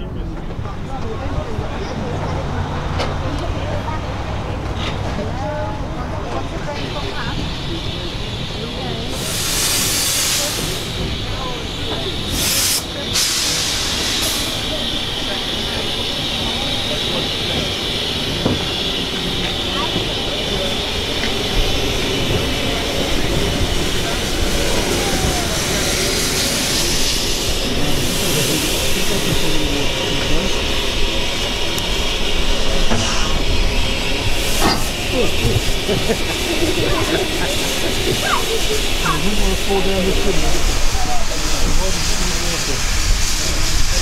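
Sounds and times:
steam locomotive running slowly: 0:00.0 - 0:44.0
loud bursts of steam hiss: 0:06.7 - 0:44.0.

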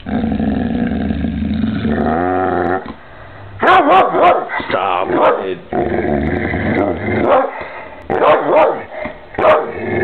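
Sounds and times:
dog growling grumble: 0:00.0 - 0:03.0, 0:05.7 - 0:07.4, 0:09.7 - 0:10.0.

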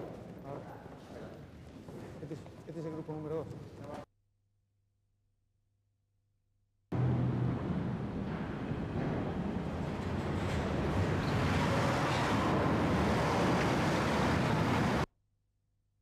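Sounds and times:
engine rumble with rushing hiss: 0:07.0 - 0:15.1.

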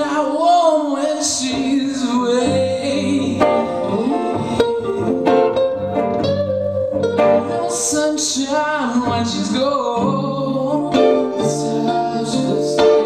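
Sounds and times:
accompanying electric guitar: 0:00.0 - 0:13.0
lead electric guitar picked notes: 0:00.0 - 0:13.0.

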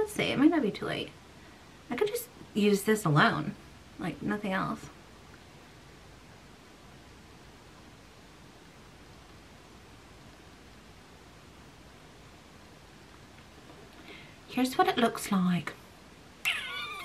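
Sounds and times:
faint microphone hiss: 0:00.0 - 0:17.0.

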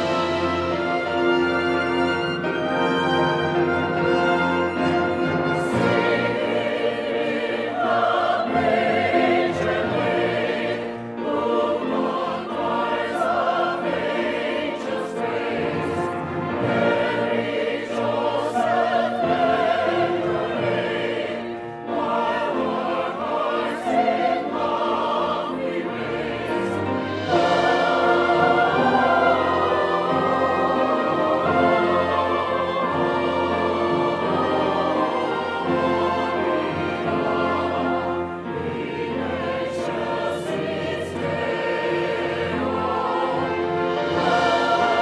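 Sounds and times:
church choir singing: 0:00.0 - 0:45.0
violins playing: 0:00.0 - 0:45.0.

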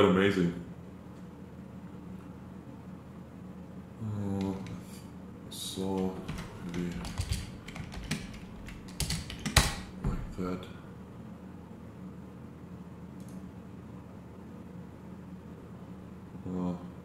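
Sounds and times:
computer keyboard typing: 0:04.4 - 0:04.8, 0:05.9 - 0:10.0.

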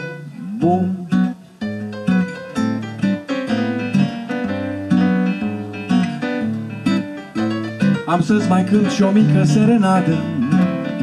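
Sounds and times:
guitar strumming chords: 0:00.0 - 0:11.0.

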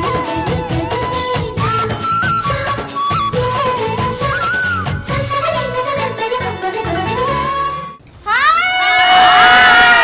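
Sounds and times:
women whooping and cheering: 0:08.3 - 0:10.0.

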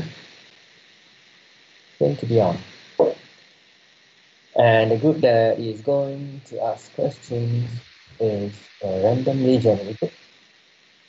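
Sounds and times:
microphone hiss: 0:00.0 - 0:11.0
person speaking: 0:02.0 - 0:03.2, 0:04.6 - 0:10.1.

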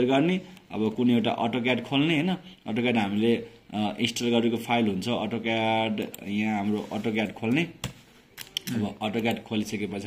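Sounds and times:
man talking: 0:00.0 - 0:10.0.

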